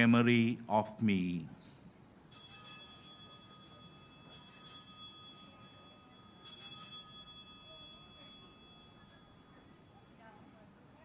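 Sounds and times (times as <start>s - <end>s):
altar bells jingling: 2.3s - 10.3s.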